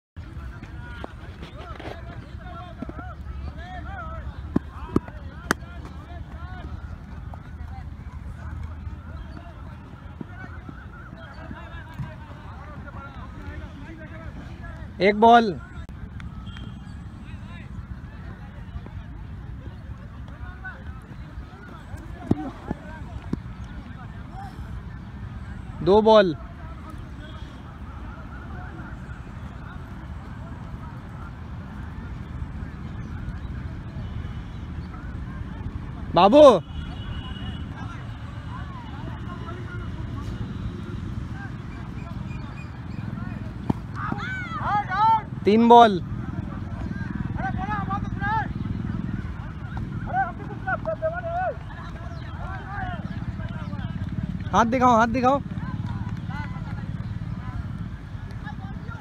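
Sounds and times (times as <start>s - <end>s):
flock of birds calling: 41.4s - 45.6s, 46.2s - 55.9s.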